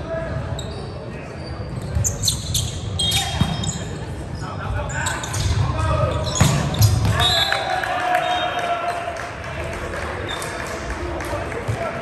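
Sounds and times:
volleyball hitting floor: 6.4 - 7.3.

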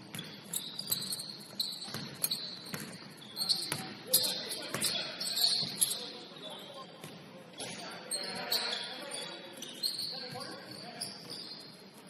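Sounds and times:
sneakers squeaking: 0.0 - 12.0
basketball bouncing on hardwood: 2.7 - 2.9.

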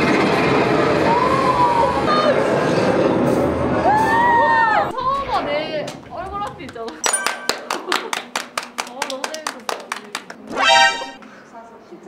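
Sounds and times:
high tone: 7.1 - 7.9, 10.5 - 11.2.

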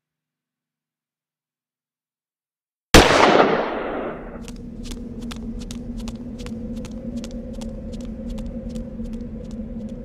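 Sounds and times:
steady hum: 3.0 - 10.0.

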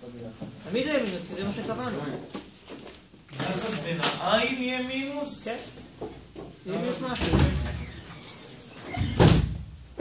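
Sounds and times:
low room murmur: 0.0 - 10.0.

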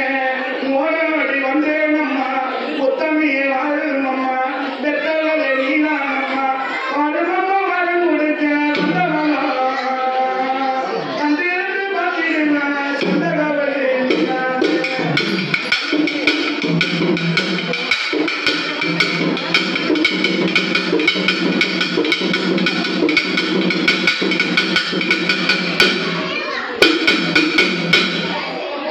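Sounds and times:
drums beaten with sticks: 8.7 - 9.4, 12.9 - 28.7
steady held tone: 14.1 - 28.7.

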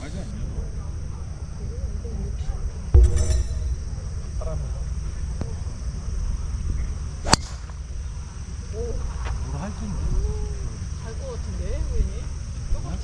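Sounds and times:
low rumble: 3.0 - 4.6
high insect hum: 4.0 - 13.0.

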